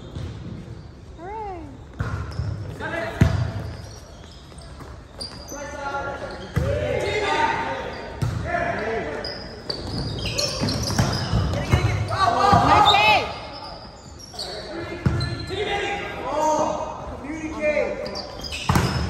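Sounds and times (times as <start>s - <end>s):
players shouting: 11.2s - 13.4s.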